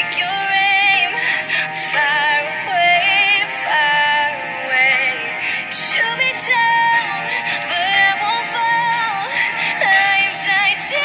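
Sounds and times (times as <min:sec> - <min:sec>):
singer holding wavering notes: 0:00.0 - 0:11.0
synth backing: 0:00.0 - 0:11.0.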